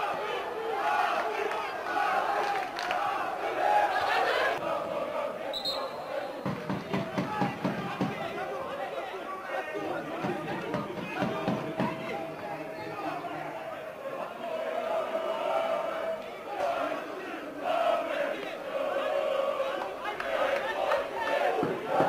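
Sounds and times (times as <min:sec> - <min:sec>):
nearer voices: 0:00.0 - 0:22.0
stadium crowd shouting: 0:00.0 - 0:22.0.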